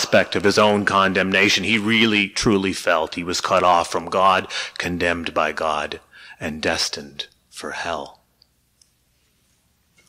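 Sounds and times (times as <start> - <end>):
man speaking: 0.0 - 8.3.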